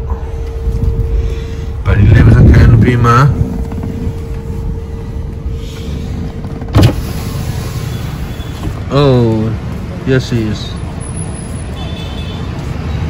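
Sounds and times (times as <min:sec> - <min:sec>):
faint steady hum: 0:00.0 - 0:08.6
car road and engine rumble: 0:00.0 - 0:13.0
sharp thump: 0:06.7 - 0:07.1.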